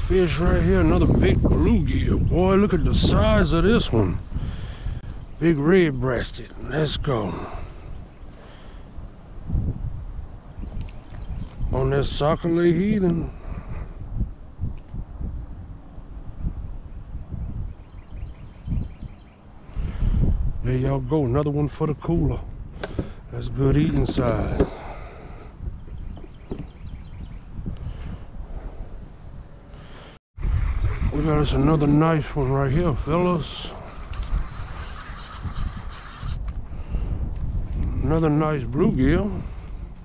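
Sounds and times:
wind buffeting microphone: 0.0 - 40.0
high hiss: 29.7 - 37.0.

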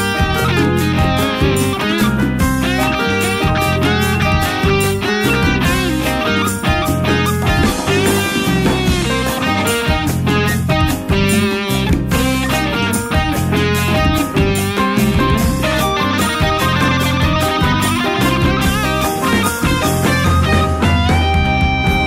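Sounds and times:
bass guitar: 0.0 - 22.0
electric guitar lead line: 0.0 - 22.0
steady drum beat: 0.2 - 22.0.

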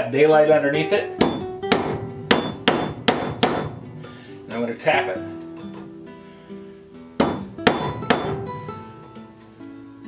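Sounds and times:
background music: 0.0 - 10.0
hammer striking steel: 1.2 - 4.7, 7.2 - 9.0.

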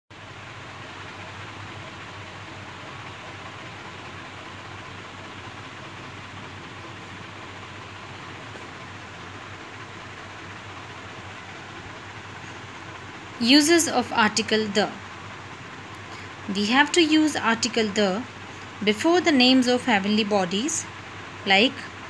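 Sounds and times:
low hum: 0.2 - 22.0
steady background hiss: 0.2 - 22.0.

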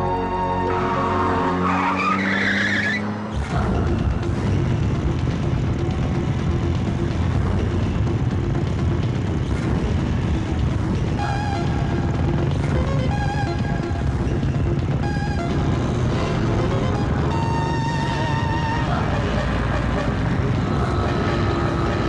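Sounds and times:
car engine accelerating: 0.6 - 22.0
tyre squeal: 1.6 - 3.1
motorcycles rumbling: 3.1 - 22.0.

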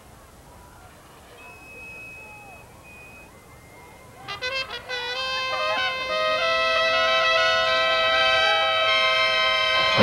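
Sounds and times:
faint crowd murmur: 0.0 - 10.0
marching band winds short notes: 4.2 - 10.0.

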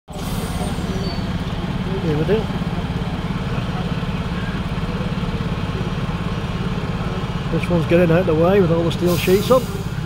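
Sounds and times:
lorry diesel engine running: 0.1 - 10.0.

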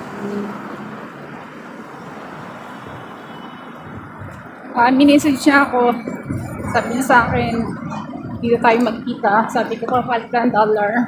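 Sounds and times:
traffic of passing cars: 0.0 - 11.0.

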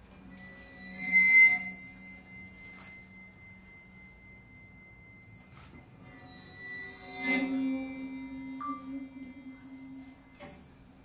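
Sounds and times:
bowed drum hoop ringing: 0.0 - 11.0.

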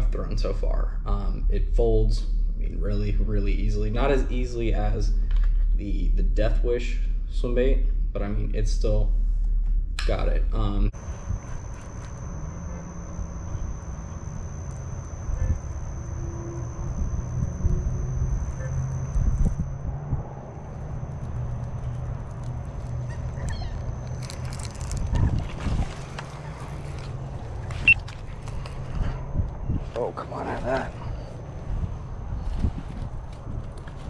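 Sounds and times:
faint high whine: 0.9 - 21.8
wind rumbling on microphone: 10.8 - 34.0.

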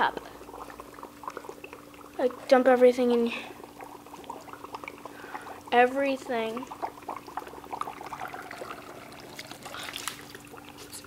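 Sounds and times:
dry ice bubbling in water: 0.0 - 11.0.

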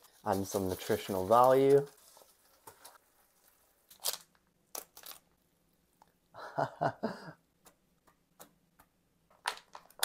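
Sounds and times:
plastic pouch being torn open: 3.9 - 5.3.

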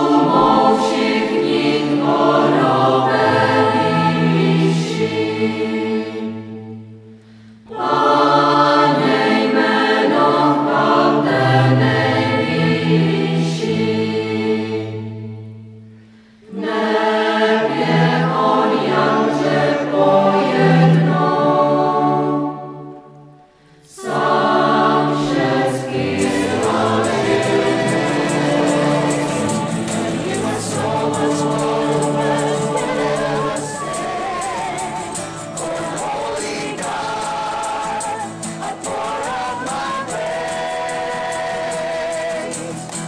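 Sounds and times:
choir singing: 0.0 - 7.0, 7.7 - 15.7, 16.4 - 43.0
sharp claps: 26.2 - 43.0.

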